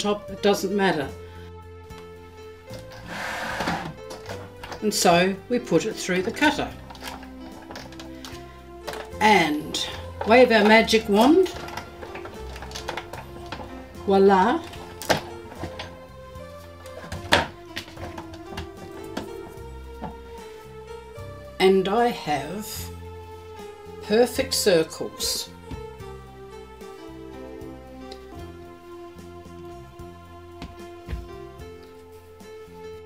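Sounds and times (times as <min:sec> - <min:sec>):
background music: 0:00.0 - 0:33.0
plastic mats scraping across platform: 0:02.8 - 0:04.6.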